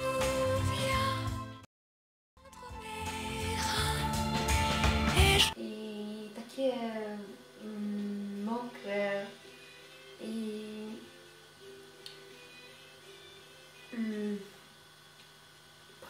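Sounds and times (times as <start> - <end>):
woman humming: 5.4 - 9.4, 10.1 - 11.3, 13.8 - 14.7.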